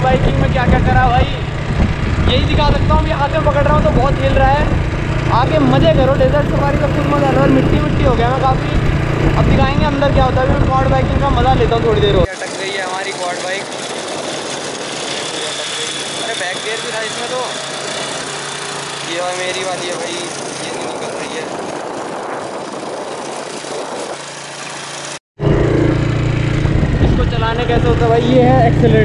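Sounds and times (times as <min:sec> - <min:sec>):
man talking: 0:00.0 - 0:01.5, 0:02.3 - 0:13.7, 0:15.2 - 0:17.6, 0:19.1 - 0:21.5, 0:27.1 - 0:29.0
quad bike engines running: 0:00.0 - 0:29.0
quad bike engine idling: 0:11.3 - 0:20.9.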